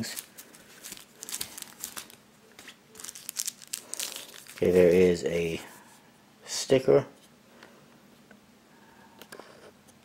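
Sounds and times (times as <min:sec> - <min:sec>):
packing stuffing crinkling: 0:00.0 - 0:05.2.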